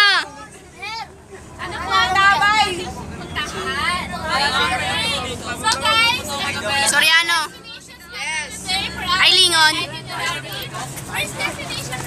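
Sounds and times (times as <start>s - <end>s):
bus engine hum: 0.0s - 12.0s
young people chattering: 0.0s - 12.0s.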